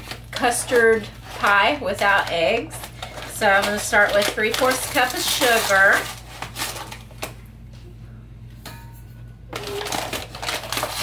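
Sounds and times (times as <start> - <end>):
paper bag rustling: 0.0 - 7.2, 9.6 - 11.0
steady low hum: 0.0 - 11.0.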